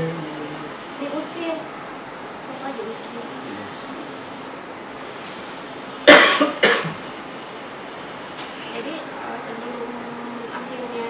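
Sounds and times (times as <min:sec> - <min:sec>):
person coughing: 0:06.1 - 0:07.0.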